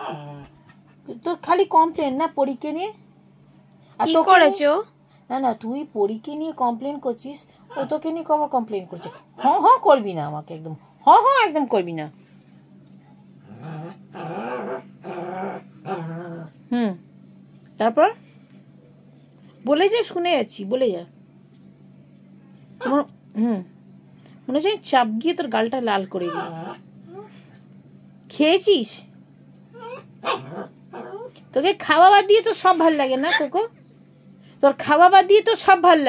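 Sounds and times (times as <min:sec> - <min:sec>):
dog growling and grumbling: 0:00.0 - 0:01.0, 0:13.4 - 0:16.7, 0:26.2 - 0:27.5, 0:29.7 - 0:31.4
dog yipping: 0:26.2 - 0:27.3, 0:29.8 - 0:31.3, 0:33.3 - 0:33.5.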